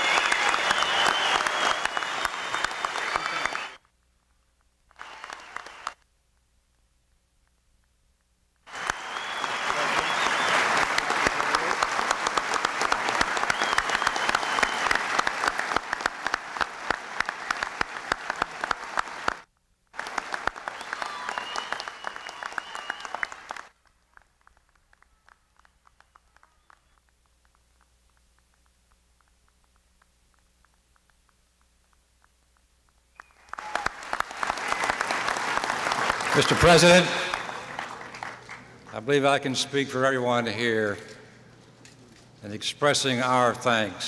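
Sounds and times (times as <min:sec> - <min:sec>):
audience applause: 0:00.0 - 0:03.8, 0:04.9 - 0:06.0, 0:08.7 - 0:27.6, 0:33.1 - 0:39.2.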